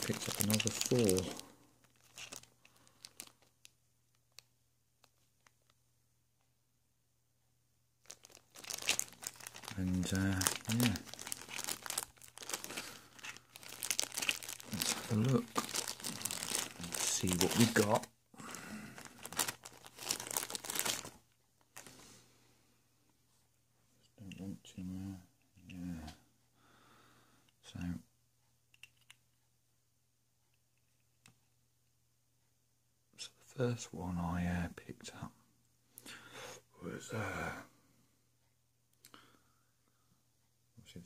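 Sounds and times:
plastic bag crinkling: 0.0s - 4.4s, 8.0s - 21.9s.

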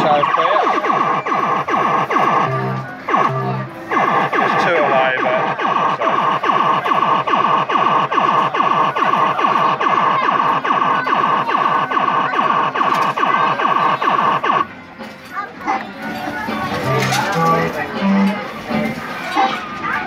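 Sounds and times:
steady high tone: 0.0s - 14.7s.

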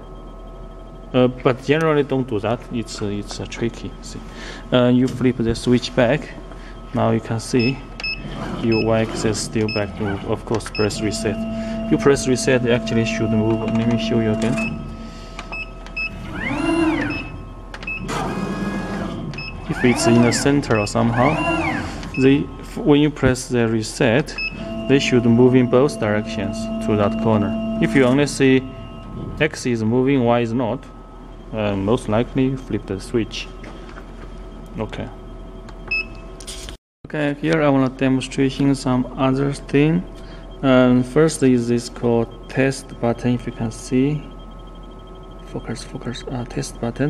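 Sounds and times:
stepper motor whine: 0.0s - 35.9s
laser cutter electrical hum: 0.0s - 47.0s.

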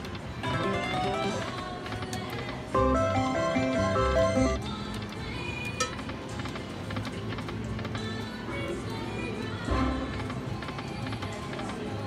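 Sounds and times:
slot machine spin music: 0.0s - 4.7s
slot machine reels spinning: 0.4s - 4.6s.

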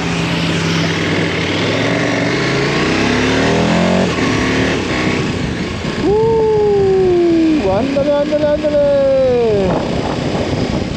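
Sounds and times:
motorcycle engine accelerating: 0.0s - 10.9s
wind rushing over helmet: 9.3s - 10.9s.

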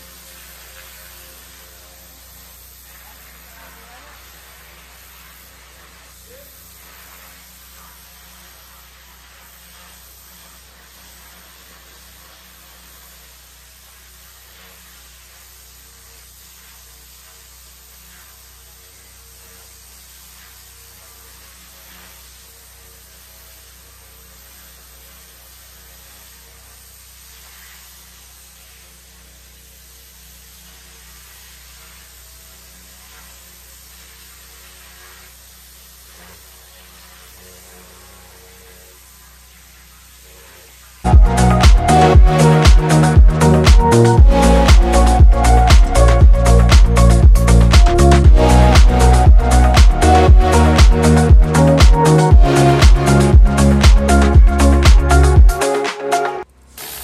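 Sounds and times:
pressure washer spray hissing: 0.0s - 57.0s
engine humming: 41.1s - 55.7s.

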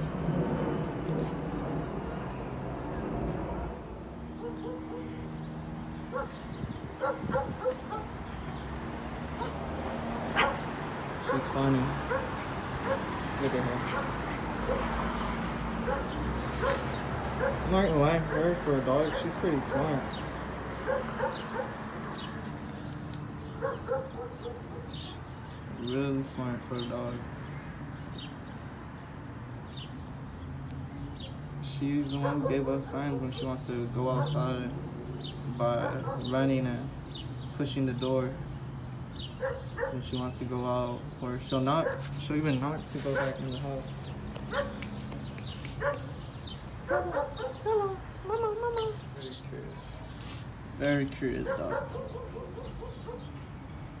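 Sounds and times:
small dog yipping barks: 7.0s - 8.1s, 10.4s - 10.6s, 44.5s - 44.8s, 45.8s - 46.1s, 46.9s - 47.6s
small dog yipping: 45.6s - 46.1s.

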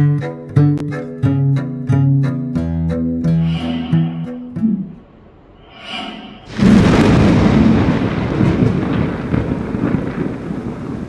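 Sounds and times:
thunderclap rumbling with crackles: 6.5s - 11.0s.

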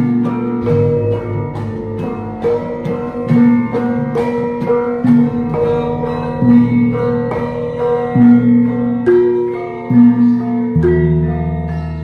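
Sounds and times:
low hanging gong tones: 0.0s - 12.0s
metallophones: 0.0s - 12.0s.

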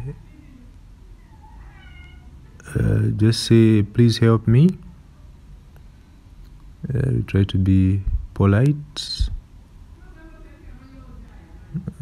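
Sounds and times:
faint high-pitched cry: 1.2s - 2.6s.

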